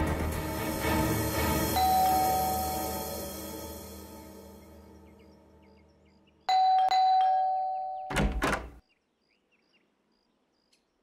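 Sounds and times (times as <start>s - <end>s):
doorbell chime: 1.8s - 3.2s, 6.5s - 8.3s.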